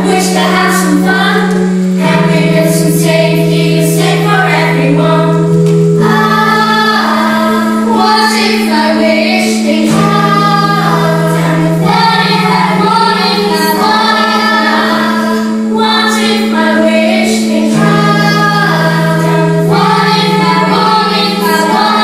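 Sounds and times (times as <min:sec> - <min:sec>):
children's choir singing: 0:00.0 - 0:22.0
instrumental accompaniment: 0:00.0 - 0:22.0.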